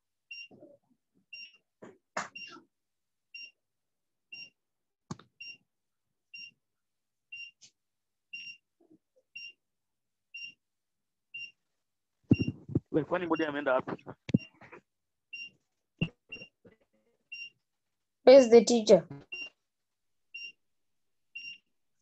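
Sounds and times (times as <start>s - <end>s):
person speaking: 12.4s - 14.4s.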